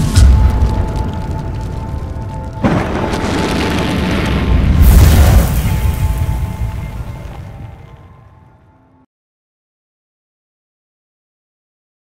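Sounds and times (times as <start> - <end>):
background music: 0.0 - 9.1
deep boom with rushing roar: 2.6 - 7.9.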